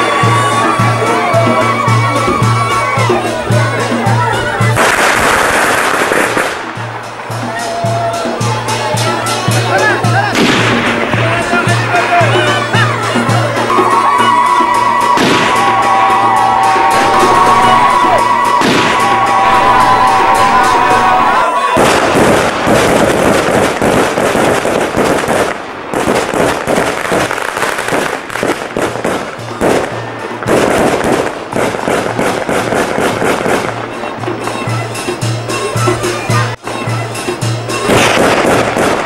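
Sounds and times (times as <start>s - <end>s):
drums beating: 0.0s - 39.0s
sharp cracks: 4.8s - 6.8s, 21.8s - 33.8s, 37.9s - 39.0s
double-reed pipe held notes: 13.6s - 21.6s.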